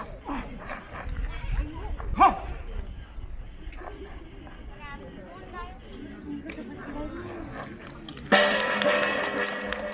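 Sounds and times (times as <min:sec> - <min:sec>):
faint voices: 0:00.0 - 0:09.9
drum strikes: 0:08.3 - 0:09.9
loud held musical notes: 0:08.3 - 0:09.9.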